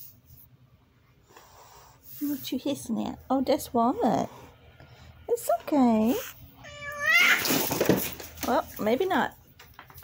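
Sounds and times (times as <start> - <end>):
cat yowling: 6.6 - 7.5.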